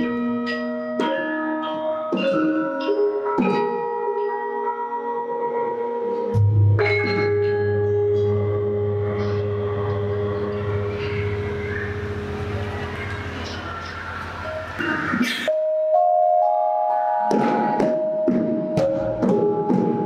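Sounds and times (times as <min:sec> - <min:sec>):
gamelan bronze keys and gongs: 0:00.0 - 0:04.7, 0:06.3 - 0:20.0.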